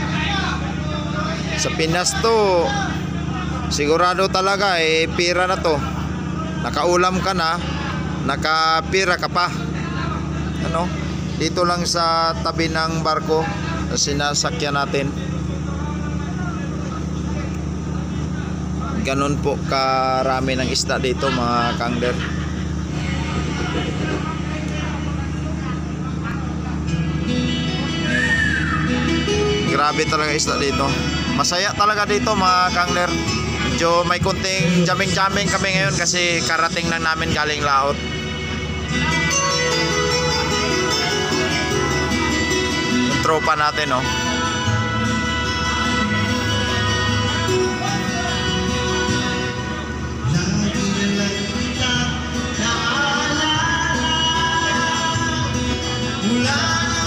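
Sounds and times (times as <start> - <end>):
acoustic guitar music: 0.0 - 16.1, 16.7 - 57.0
ship machinery humming: 0.0 - 57.0.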